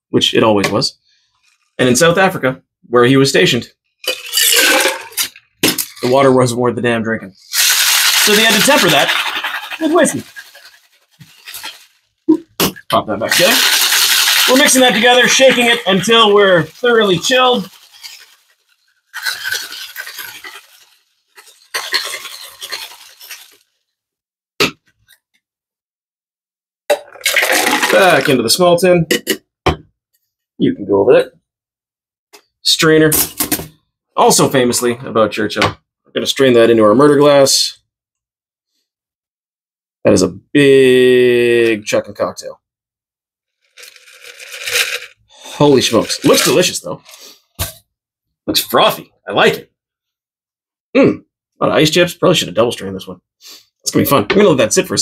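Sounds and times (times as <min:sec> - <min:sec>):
ice rattling in cocktail shaker: 0:04.0 - 0:06.3, 0:07.5 - 0:12.2, 0:13.2 - 0:23.7, 0:27.0 - 0:28.4, 0:43.6 - 0:47.2.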